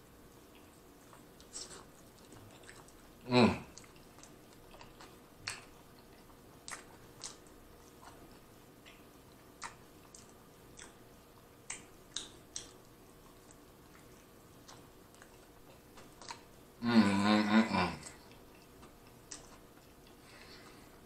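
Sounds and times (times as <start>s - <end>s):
wet chewing mouth clicks: 0.5s - 16.5s, 18.0s - 20.6s.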